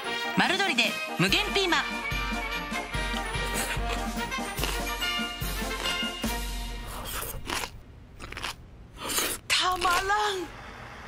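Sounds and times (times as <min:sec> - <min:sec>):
crunching of pepper being chewed: 0:03.1 - 0:06.2, 0:06.8 - 0:10.2.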